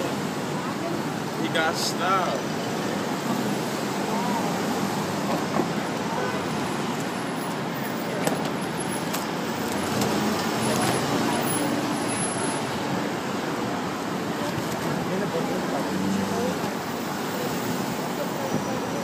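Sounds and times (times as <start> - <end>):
passing traffic: 0.0 - 19.0.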